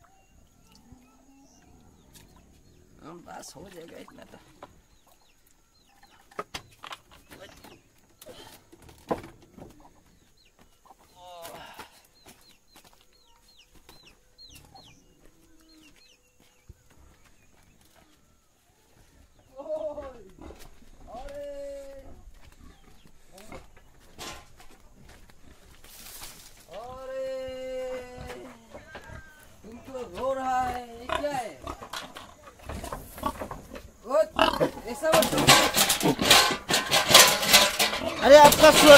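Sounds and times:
chickens clucking: 0.0s - 11.3s, 12.1s - 21.1s, 22.0s - 26.4s, 28.2s - 38.9s.

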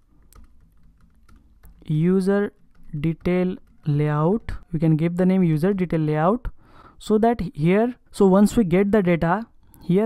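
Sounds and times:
keyboard typing: 0.0s - 6.4s.

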